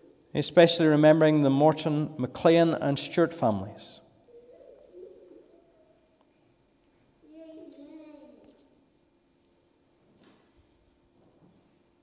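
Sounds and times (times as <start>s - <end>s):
faint low cooing: 4.2s - 6.2s.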